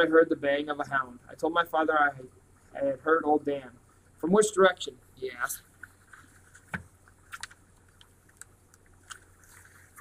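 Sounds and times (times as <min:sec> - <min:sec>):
faint clicks and ticks: 0:05.7 - 0:09.8.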